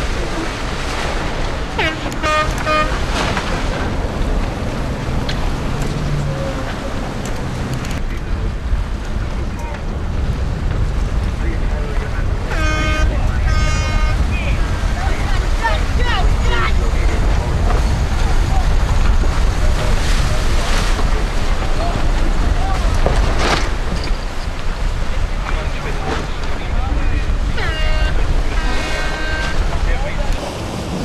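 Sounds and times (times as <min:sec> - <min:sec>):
water rushing past yacht: 0:00.0 - 0:31.0
wind buffeting microphone: 0:00.0 - 0:31.0.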